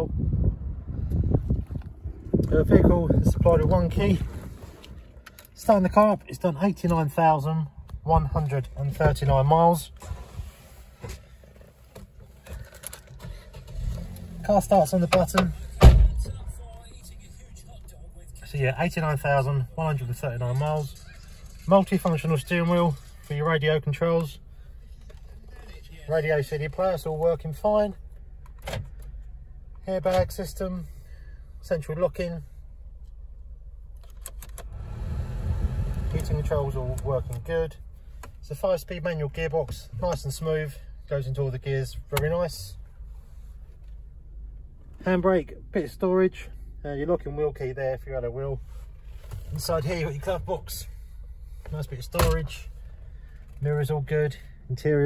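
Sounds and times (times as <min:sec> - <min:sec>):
car engine starting: 0:00.2 - 0:55.0
rush of air from vents: 0:34.7 - 0:38.4.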